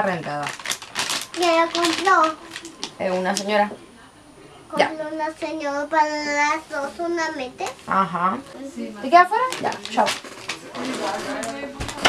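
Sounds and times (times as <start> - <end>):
quiet talking: 1.3 - 12.0.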